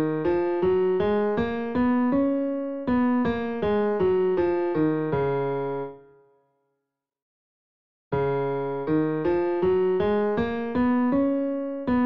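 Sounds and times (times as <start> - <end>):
piano playing a scale: 0.0 - 6.1, 8.2 - 12.0.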